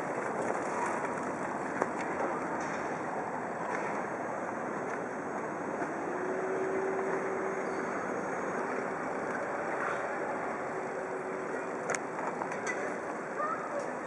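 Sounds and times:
distant traffic: 0:00.0 - 0:14.0.

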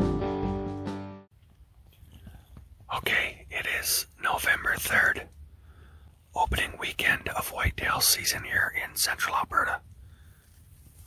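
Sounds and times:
small clicks and rustles: 0:01.4 - 0:03.0
person whispering: 0:02.9 - 0:05.4, 0:06.3 - 0:09.9.

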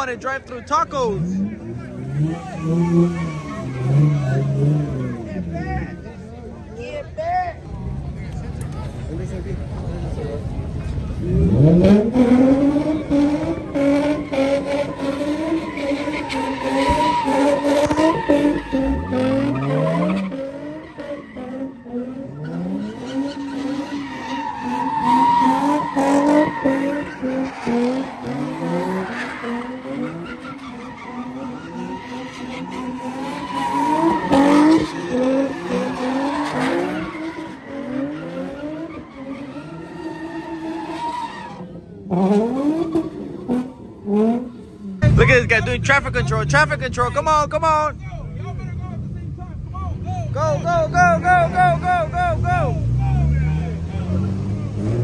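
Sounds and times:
car engines revving: 0:00.0 - 0:55.0
tyres screeching: 0:12.4 - 0:41.6.

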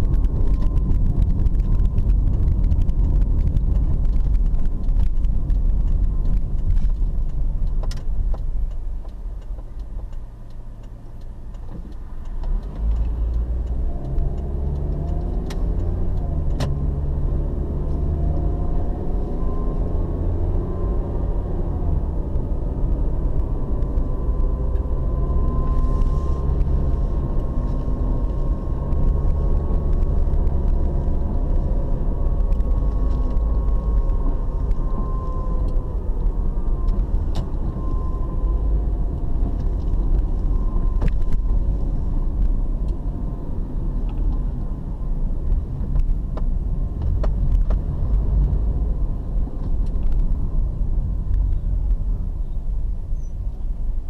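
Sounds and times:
car engine: 0:00.0 - 0:54.0
road rumble: 0:00.0 - 0:54.0.

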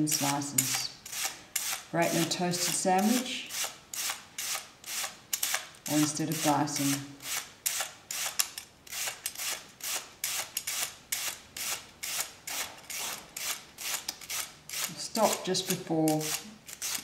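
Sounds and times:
onion rasping on peeler blade: 0:00.0 - 0:17.0.

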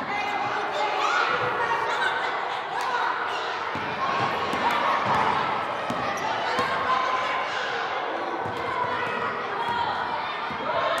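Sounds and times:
crowd of voices: 0:00.0 - 0:11.0
basketball bouncing on wooden court: 0:03.7 - 0:06.8, 0:08.4 - 0:09.8.

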